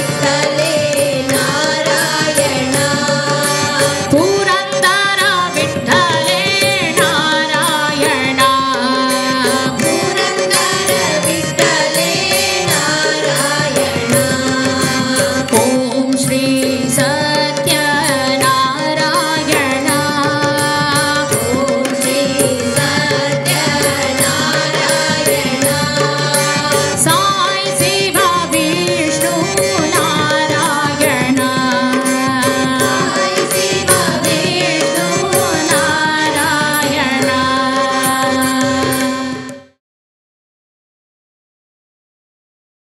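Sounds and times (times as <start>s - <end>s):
group singing devotional song: 0.0s - 4.1s, 5.5s - 39.5s
hand drums rhythm: 0.0s - 39.5s
harmonium holding a note: 0.0s - 39.8s.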